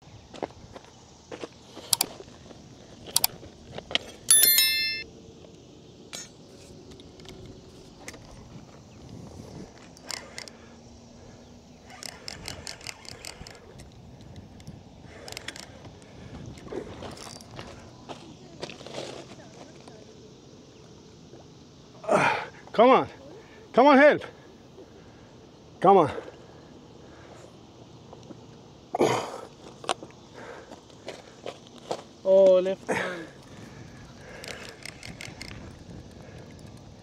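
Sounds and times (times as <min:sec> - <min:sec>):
outdoor background: 0:00.0 - 0:37.0
bell-like metallic ring: 0:04.3 - 0:05.1
sharp clicks and clinks: 0:04.3 - 0:05.1.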